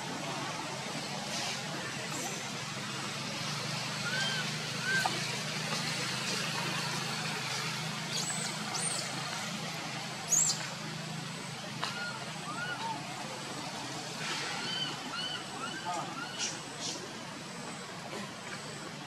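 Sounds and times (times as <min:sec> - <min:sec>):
low engine-like hum: 0:00.0 - 0:19.0.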